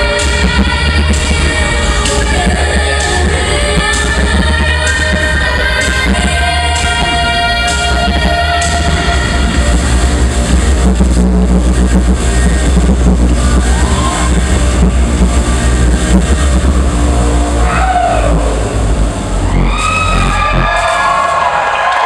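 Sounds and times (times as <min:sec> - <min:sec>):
beatboxing: 0:00.0 - 0:16.9
vocal bass line: 0:00.0 - 0:21.8.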